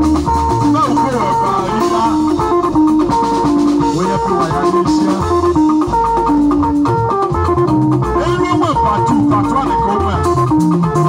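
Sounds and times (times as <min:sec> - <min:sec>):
bass guitar: 0:00.0 - 0:11.0
drum kit: 0:00.0 - 0:11.0
electric guitars: 0:00.0 - 0:11.0
hand drums: 0:00.0 - 0:11.0.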